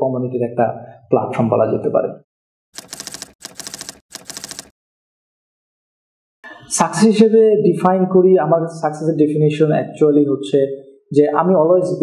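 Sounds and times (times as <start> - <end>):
typewriter key clacks: 2.8 - 4.7.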